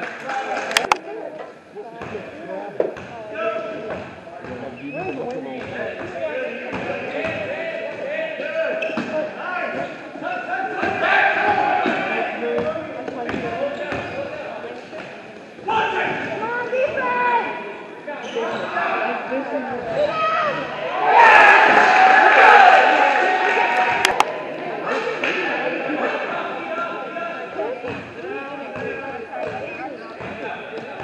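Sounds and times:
people shouting and calling out: 4.6 - 13.8, 15.6 - 31.0
crowd cheering: 20.1 - 26.5.

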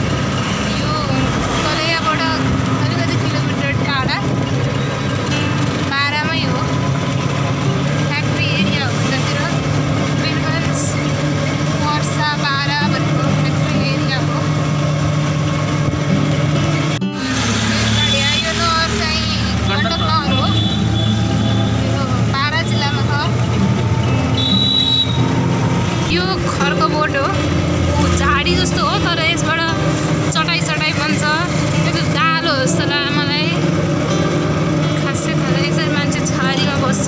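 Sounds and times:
vehicle engine hum: 0.0 - 37.0.

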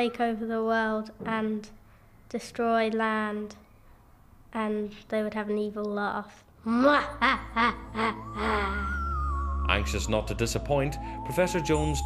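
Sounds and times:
child's mock evil laugh: 6.8 - 9.3
background music: 7.0 - 12.0.

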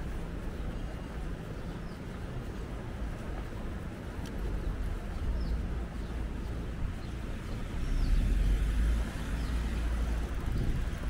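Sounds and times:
passing cars rumble: 0.0 - 11.0.

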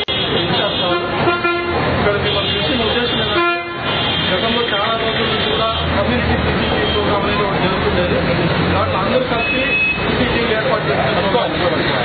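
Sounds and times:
vehicle horns honking: 0.0 - 6.0, 6.6 - 7.4, 9.4 - 10.2
engine noise: 0.0 - 12.0
voices: 0.0 - 12.0.

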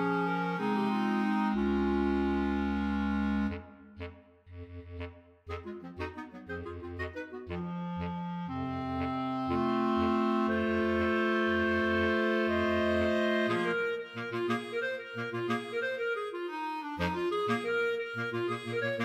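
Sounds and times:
bass clarinet low triplet notes: 0.0 - 19.0
clarinet choir playing: 0.0 - 19.0.

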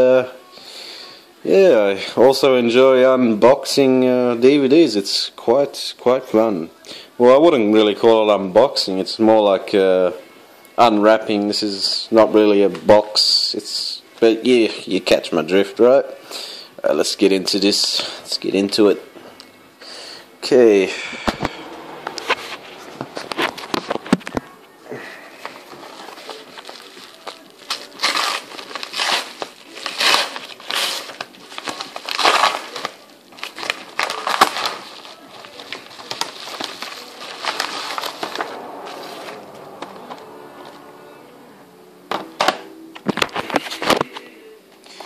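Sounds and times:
envelope tearing and crinkling: 25.4 - 39.4
sharp paper crackles: 25.4 - 39.4.

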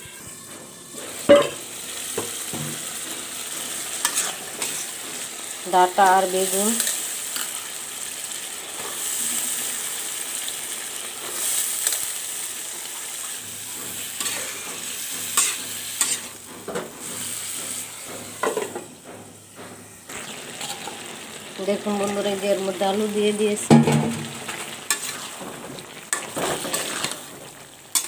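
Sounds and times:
metal spatula scraping a pan: 0.0 - 7.8, 13.2 - 18.8, 23.7 - 28.0
vegetables sizzling in a pan: 0.0 - 28.0.

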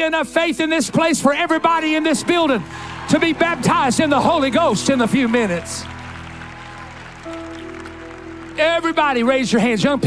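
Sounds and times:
worship band music: 0.0 - 10.0.

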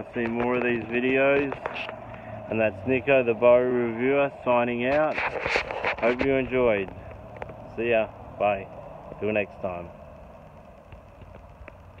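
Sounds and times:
low steady hum: 0.0 - 12.0
soft ticks: 10.0 - 12.0.

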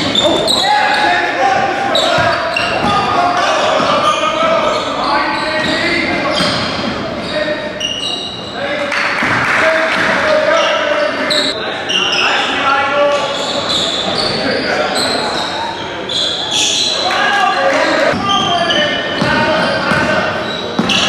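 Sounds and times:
players and crowd shouting: 0.0 - 6.4, 16.4 - 21.0
sneakers squeaking on hardwood: 0.0 - 8.6, 13.2 - 17.1, 18.0 - 21.0.

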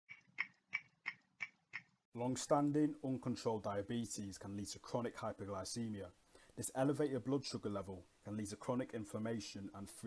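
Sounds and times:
clock ticking: 0.1 - 2.0.

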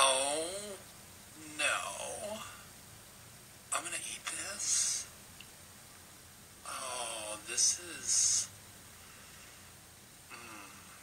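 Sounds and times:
room hiss: 0.0 - 11.0
man humming: 10.3 - 11.0.

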